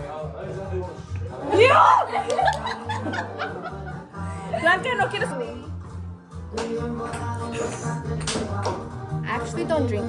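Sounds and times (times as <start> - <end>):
women laughing: 1.6 - 4.8.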